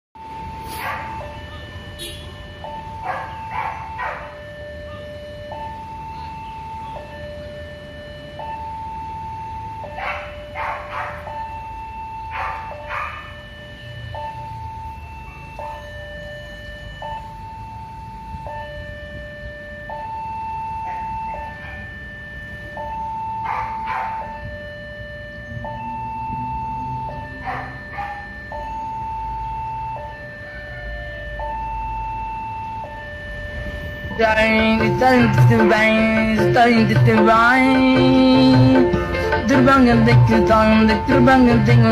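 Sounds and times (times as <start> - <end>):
level crossing two-tone alarm: 0.2 - 41.9
low rumble of traffic: 0.2 - 41.9.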